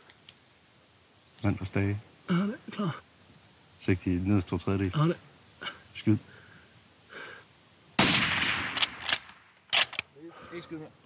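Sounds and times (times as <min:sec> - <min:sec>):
rifle shot with echo: 0:08.0 - 0:09.5
sharp metallic clicks: 0:08.2 - 0:10.1.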